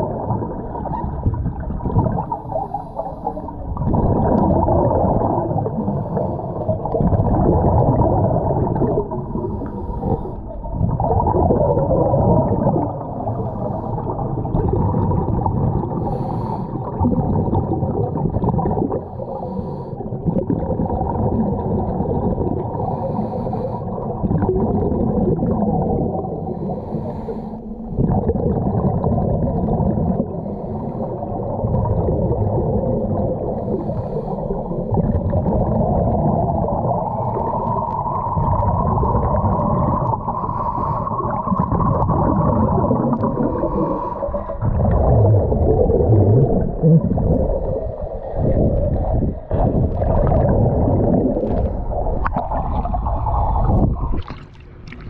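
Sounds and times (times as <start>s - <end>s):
underwater regulator breathing and bubbles: 0.0s - 55.0s.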